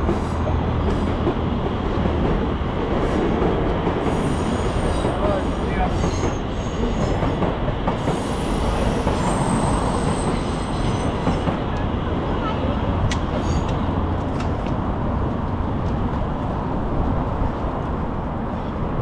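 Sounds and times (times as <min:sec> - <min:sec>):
train rumbling on tracks: 0:00.0 - 0:19.0
train wheels squealing: 0:04.1 - 0:07.2, 0:08.0 - 0:11.5, 0:13.4 - 0:13.8.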